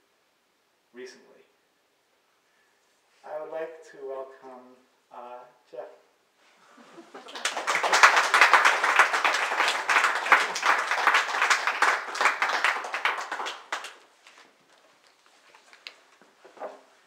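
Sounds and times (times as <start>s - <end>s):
audience applauding: 7.0s - 14.4s.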